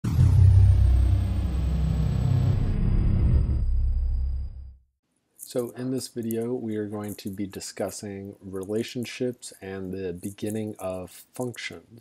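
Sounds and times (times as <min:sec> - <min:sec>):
loud deep rumble: 0:00.0 - 0:04.8.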